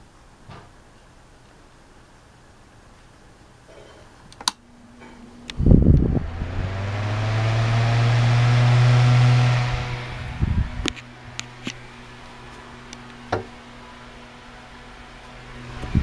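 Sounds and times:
fan motor hum and rushing air: 4.7s - 16.0s.

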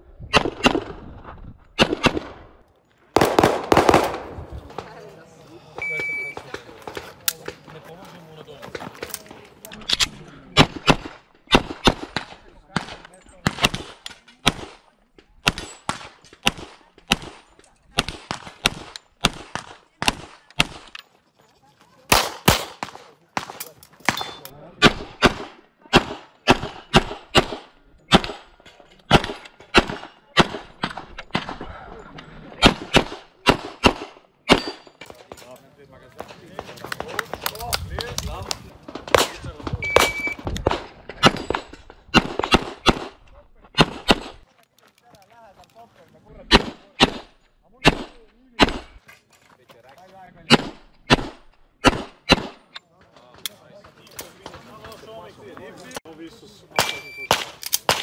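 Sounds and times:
pistol shots: 0.3s - 1.0s, 1.8s - 2.4s, 3.2s - 5.0s, 10.6s - 14.8s, 15.4s - 21.0s, 22.1s - 31.6s, 32.6s - 35.4s, 39.0s - 43.2s, 43.8s - 44.4s, 46.5s - 49.0s, 50.5s - 52.7s, 56.8s - 58.0s
electronic shot timer beep: 5.8s - 6.4s, 39.8s - 40.4s.

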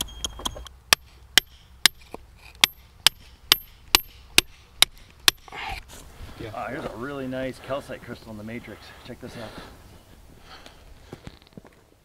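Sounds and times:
hammer striking rock: 0.9s - 5.6s.

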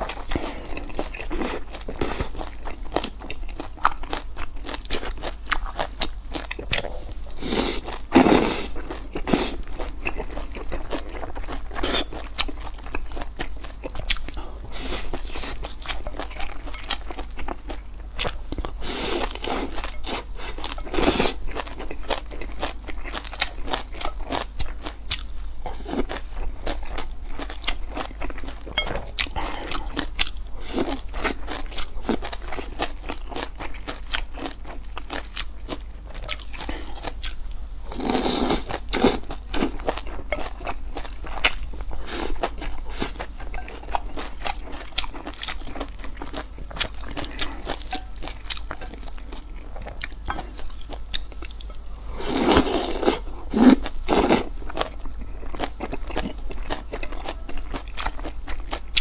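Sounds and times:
person chewing crunchy food: 0.0s - 59.0s.

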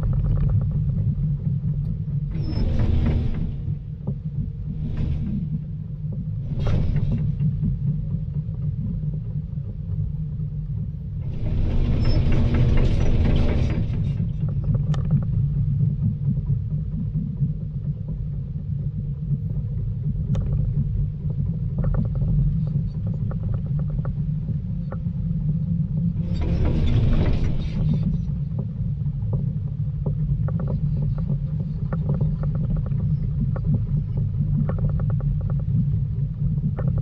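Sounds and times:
excavator diesel engine rumbling: 11.3s - 14.3s.

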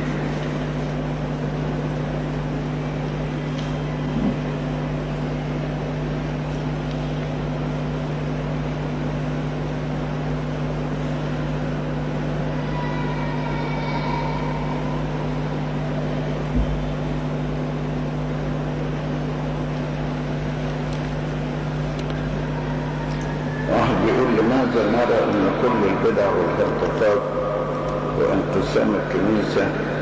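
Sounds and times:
electrical hum and hiss: 0.0s - 30.0s.

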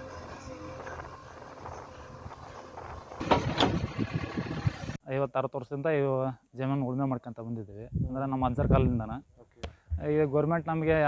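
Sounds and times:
backhoe engine running: 0.0s - 5.0s.

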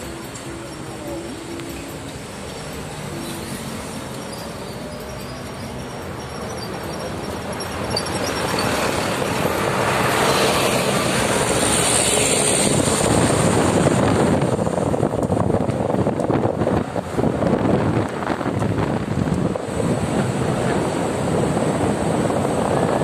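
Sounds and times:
wind buffeting microphone: 8.0s - 23.0s.

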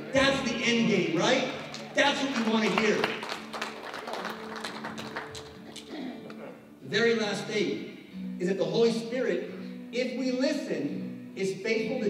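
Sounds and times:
congregation clapping and tapping: 1.3s - 6.0s.

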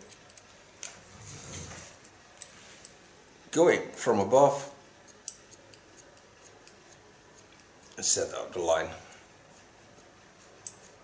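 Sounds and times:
scissors and comb clicks: 0.0s - 1.0s, 5.1s - 8.0s, 10.0s - 11.0s.

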